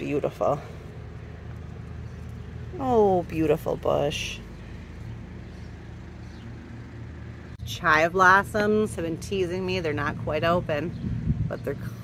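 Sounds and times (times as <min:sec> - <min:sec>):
faint outdoor background noise: 0:00.0 - 0:12.0
low mechanical hum: 0:00.0 - 0:12.0.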